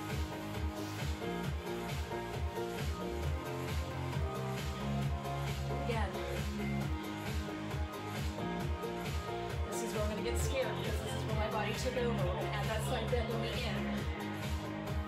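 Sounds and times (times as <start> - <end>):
workout music with bass beat: 0.0 - 15.0.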